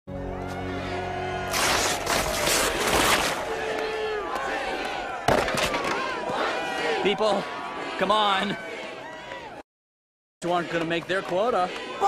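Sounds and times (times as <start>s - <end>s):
people shouting: 0.3s - 9.6s, 11.2s - 12.0s.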